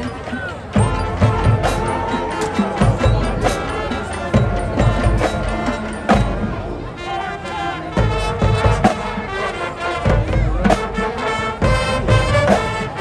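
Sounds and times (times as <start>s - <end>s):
drum beat: 0.0s - 6.8s, 8.0s - 9.4s, 10.0s - 13.0s
brass chords: 0.0s - 13.0s.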